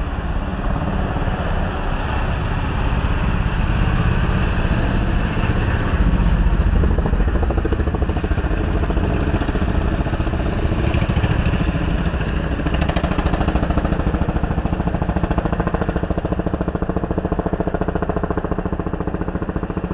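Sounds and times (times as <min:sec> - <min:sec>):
motorcycle engines running: 0:00.0 - 0:19.9.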